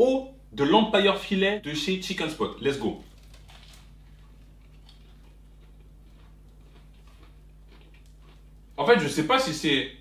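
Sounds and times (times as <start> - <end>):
low electrical hum: 0.0 - 10.0
chewing crunchy food: 2.5 - 9.1.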